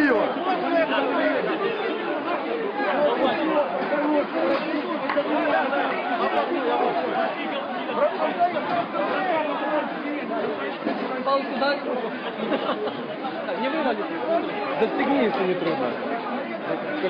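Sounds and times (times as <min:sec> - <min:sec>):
crowd talking and shouting: 0:00.0 - 0:17.0.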